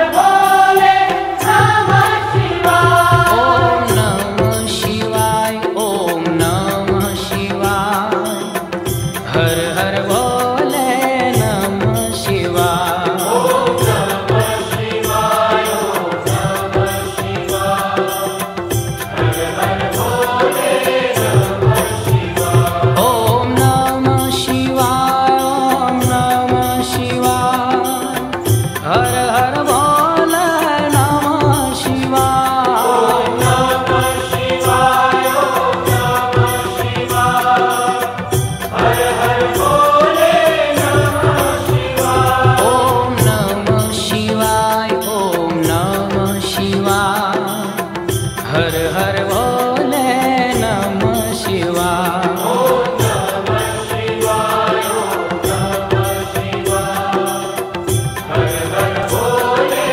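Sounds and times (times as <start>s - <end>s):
devotional chanting voices: 0.0s - 59.9s
music with a steady beat: 0.0s - 59.9s.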